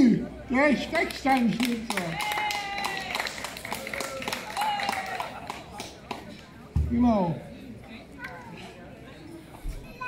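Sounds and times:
applause: 1.0 - 6.3.

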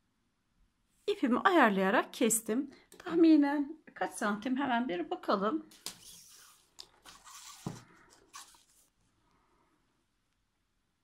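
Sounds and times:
rustling and scraping of yarn: 5.8 - 9.2.

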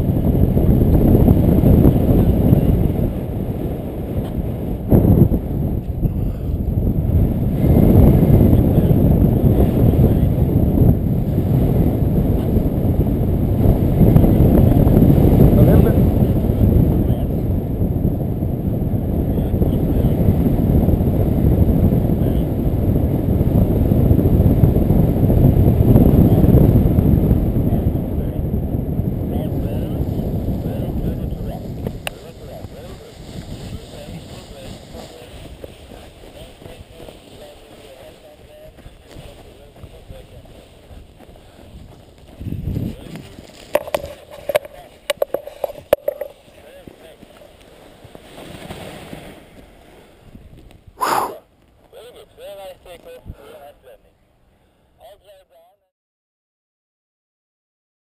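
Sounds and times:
wind buffeting microphone: 0.0 - 53.6.

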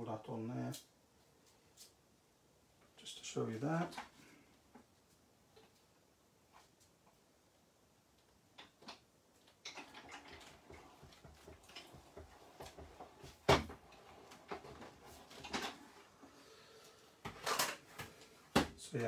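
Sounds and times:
hand-cranked machine clicking and rattling: 9.6 - 13.1.

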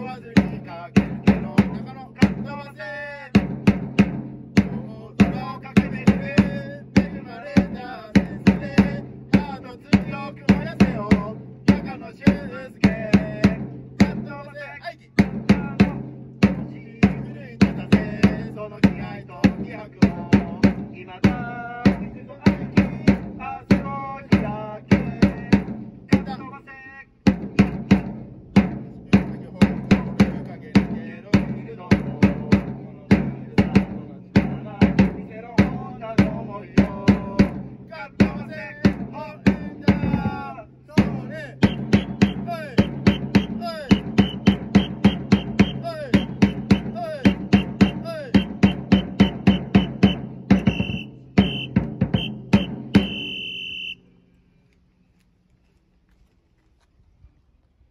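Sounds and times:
cheer song with drums and melody: 41.0 - 53.4.

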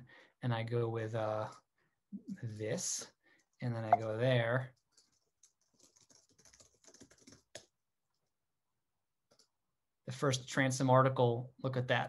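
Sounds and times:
typing on computer keyboard: 4.7 - 7.8, 9.3 - 9.5.

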